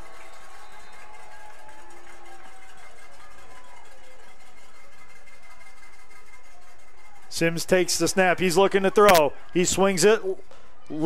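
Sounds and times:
stadium background noise: 0:00.0 - 0:11.0.

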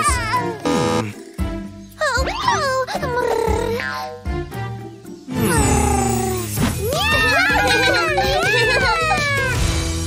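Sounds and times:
children's song music: 0:00.0 - 0:10.0.

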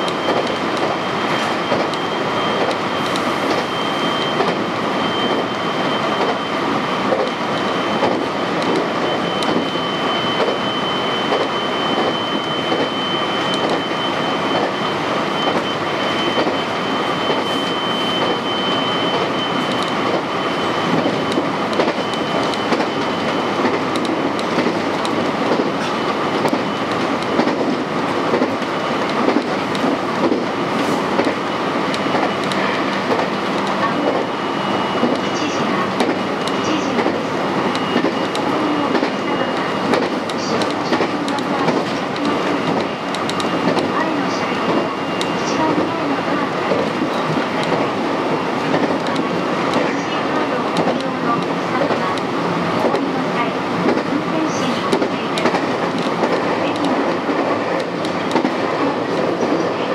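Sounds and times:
train wheels rumbling on rail: 0:00.0 - 0:59.9
track clicks: 0:07.1 - 0:10.6, 0:11.2 - 0:17.4, 0:18.2 - 0:20.3, 0:20.9 - 0:48.0, 0:48.6 - 0:59.8.

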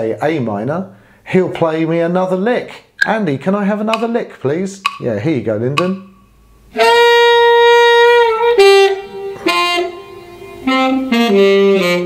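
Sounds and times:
tenor saxophone playing: 0:06.7 - 0:12.0.

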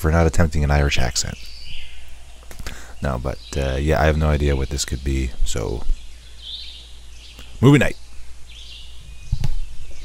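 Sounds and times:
low thumps and handling noise: 0:09.2 - 0:10.0.

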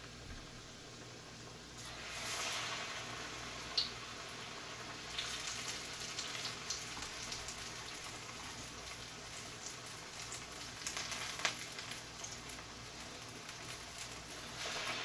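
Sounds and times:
battered food frying in oil: 0:00.0 - 0:15.0.

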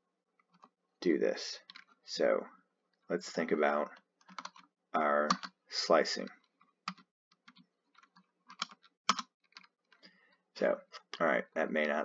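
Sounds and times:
computer keyboard clicks: 0:04.2 - 0:04.6, 0:06.9 - 0:09.7.

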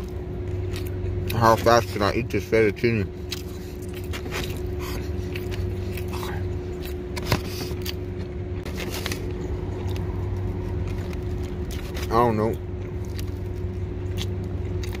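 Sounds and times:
chewing: 0:00.0 - 0:02.0, 0:03.2 - 0:12.2, 0:12.8 - 0:15.0
steady cab hum: 0:00.0 - 0:15.0.

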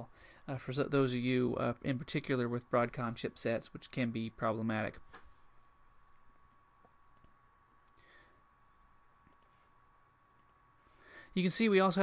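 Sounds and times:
computer mouse clicks: 0:07.2 - 0:08.0, 0:08.6 - 0:09.6, 0:10.4 - 0:10.6.

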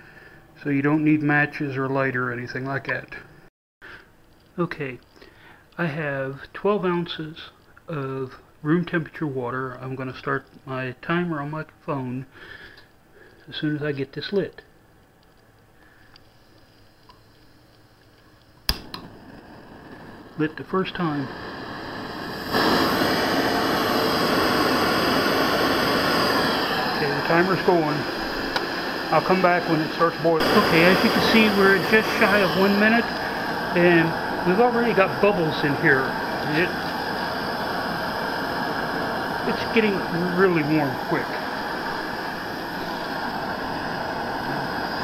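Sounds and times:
gas burner hissing: 0:15.2 - 0:45.0
piezo igniter snap: 0:17.0 - 0:20.5, 0:28.3 - 0:29.4.

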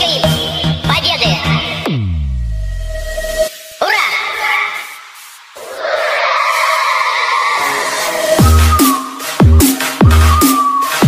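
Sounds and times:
screeching electronic effect: 0:05.6 - 0:08.9.

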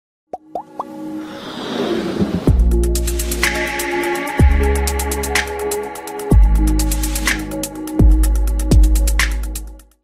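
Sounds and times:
quick pops rising in pitch: 0:00.3 - 0:01.0
whoosh: 0:01.2 - 0:03.2.

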